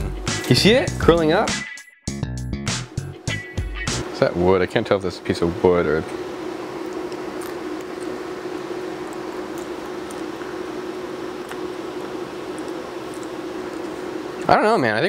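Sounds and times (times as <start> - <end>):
laser cutter fan whirring: 3.0 - 15.0.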